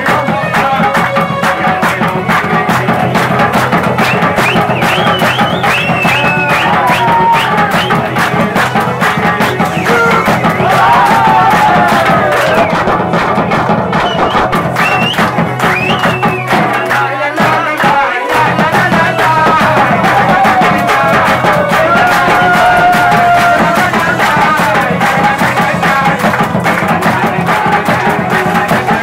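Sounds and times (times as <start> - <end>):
barrel drum beaten fast: 0.0 - 29.0
group hand-clapping: 0.0 - 29.0.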